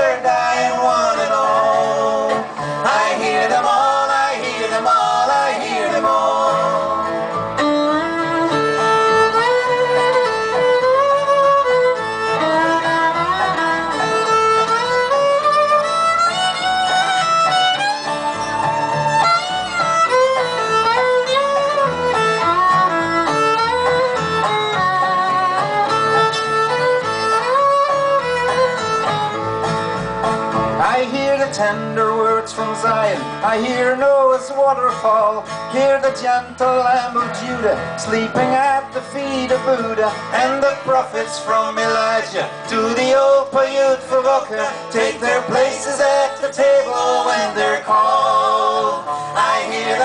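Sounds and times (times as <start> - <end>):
bowed fiddle melody: 0.0 - 50.0
dobro: 0.0 - 50.0
strummed acoustic guitar: 0.0 - 50.0
upright bass: 0.0 - 50.0.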